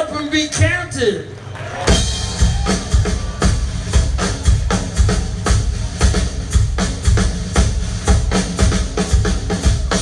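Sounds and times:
live rock band through speakers: 0.0 - 10.0
steady drum beat: 1.7 - 10.0.

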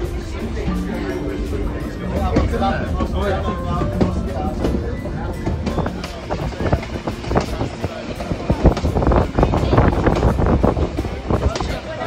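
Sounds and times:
train running gear rumble: 0.0 - 12.0
wheels clattering and knocking: 0.0 - 12.0.

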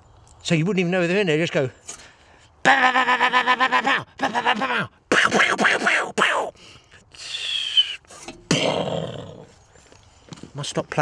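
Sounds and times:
man imitating gunfire: 2.7 - 6.5.

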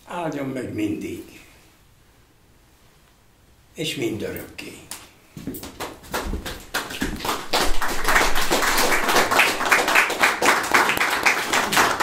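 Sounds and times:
small audience applauding: 5.6 - 12.0.

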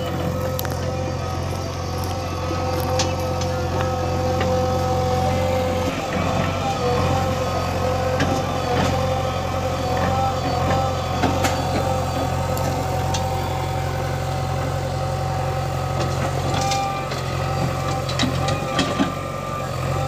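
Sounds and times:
diesel engines running: 0.0 - 20.0
steady whine: 0.0 - 20.0.

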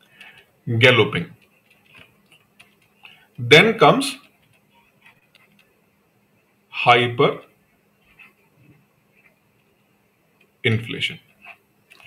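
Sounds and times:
stylus tapping on tablet screen: 1.4 - 3.2.

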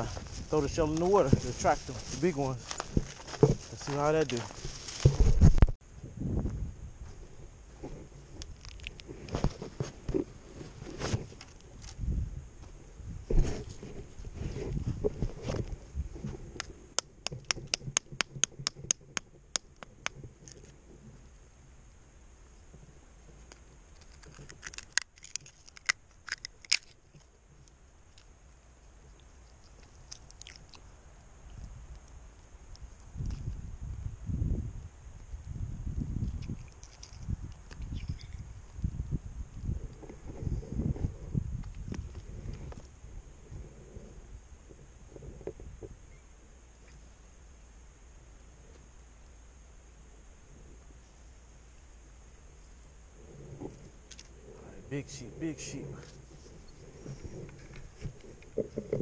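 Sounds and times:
handling noises: 0.0 - 5.8
mussel shells cracking: 23.9 - 27.3, 29.4 - 30.8.

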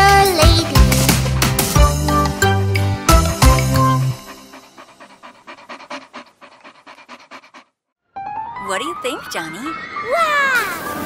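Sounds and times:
quick rhythmic panting: 0.0 - 7.9.

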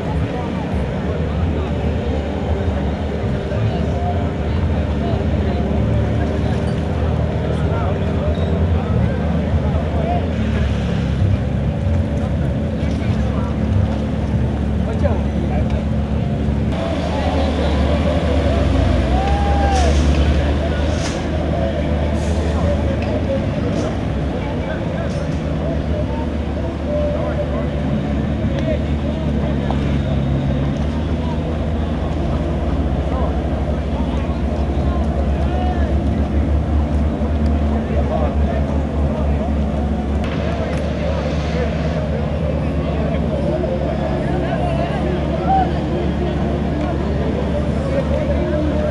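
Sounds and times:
outboard motors humming: 0.0 - 48.9
people talking in background: 0.0 - 48.9.

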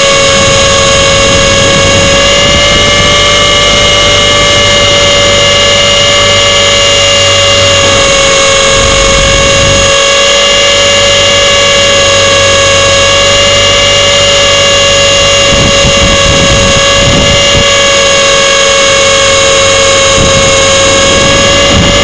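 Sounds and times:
low rumbling: 0.0 - 22.0
model helicopter motor whine: 0.0 - 22.0.

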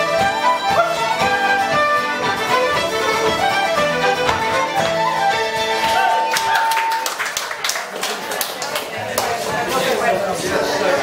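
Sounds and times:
hand clapping: 5.8 - 9.4
people talking: 7.9 - 11.0.

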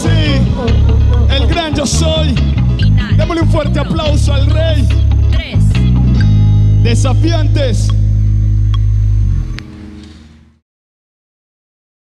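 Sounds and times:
electric bass and guitar chord: 0.0 - 10.6.

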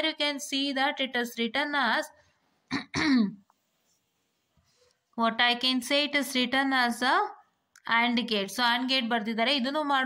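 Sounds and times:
person clearing throat: 2.7 - 3.4.

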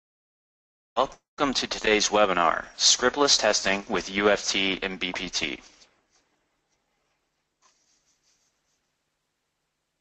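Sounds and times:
faint recording hiss: 1.0 - 10.0
soft high-pitched puffs: 4.8 - 9.0.

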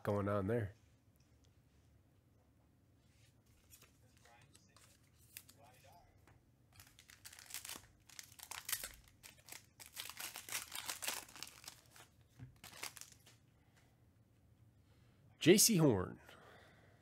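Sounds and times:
wrapper tearing and crinkling: 6.8 - 13.2.

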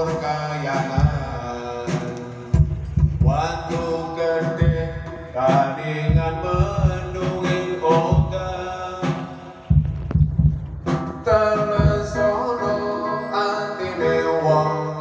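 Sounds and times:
man singing into a microphone: 0.0 - 2.5, 3.2 - 9.7, 11.2 - 15.0
amplified backing music with low beat: 0.0 - 14.9.

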